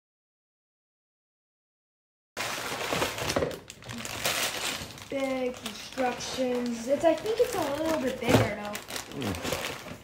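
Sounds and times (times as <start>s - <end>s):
plastic bags crinkling: 2.4s - 10.0s.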